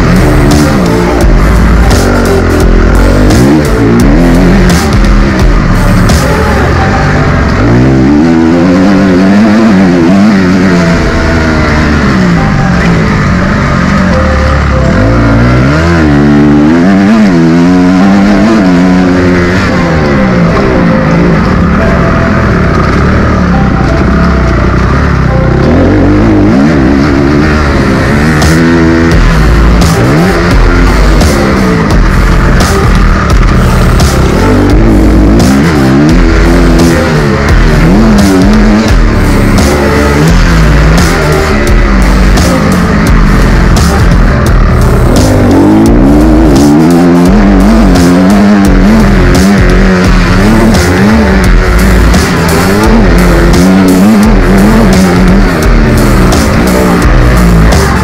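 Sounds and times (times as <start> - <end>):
motocross bike engine revving: 0.0 - 58.0
music: 0.0 - 58.0.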